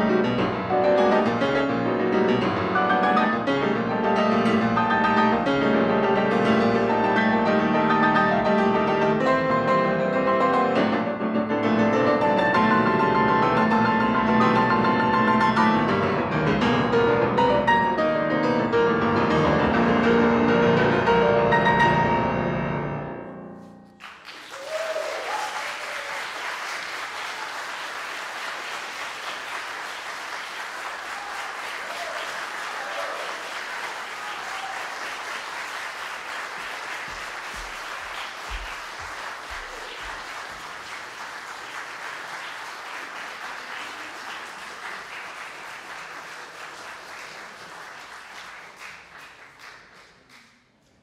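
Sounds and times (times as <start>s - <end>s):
audience applauding: 23.9s - 50.8s.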